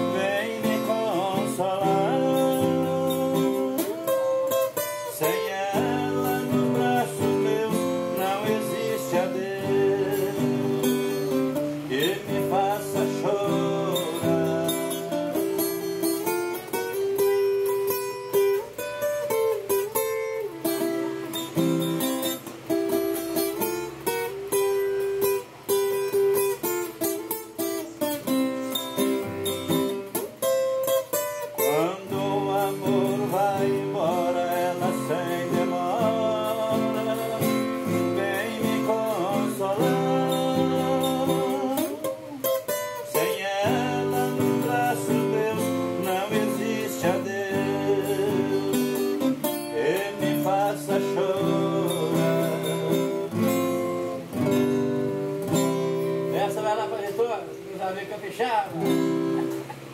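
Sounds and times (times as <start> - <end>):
acoustic guitar music: 0.0 - 59.9.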